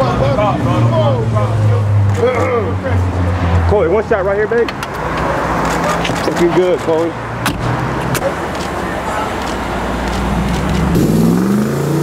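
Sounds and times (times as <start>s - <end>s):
engine revving: 10.2s - 12.0s.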